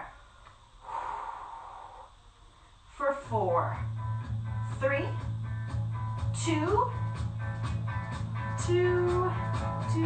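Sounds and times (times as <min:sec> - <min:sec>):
woman exhaling breathily: 0:00.8 - 0:02.2.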